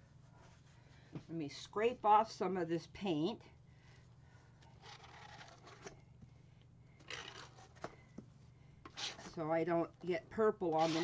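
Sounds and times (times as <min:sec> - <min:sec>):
tool scraping paint on canvas: 0:08.9 - 0:09.4, 0:10.7 - 0:11.0.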